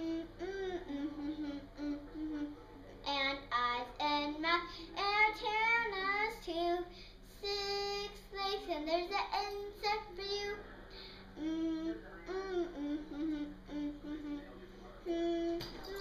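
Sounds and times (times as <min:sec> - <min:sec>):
girl singing unaccompanied: 0:03.1 - 0:10.6.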